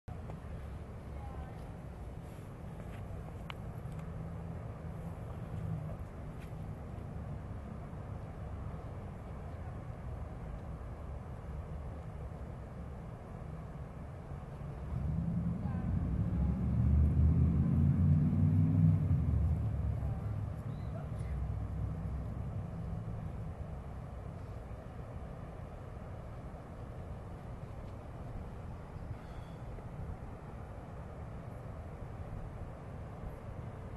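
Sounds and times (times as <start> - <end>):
low city rumble: 0.0 - 33.9
vehicle passing: 14.8 - 24.3.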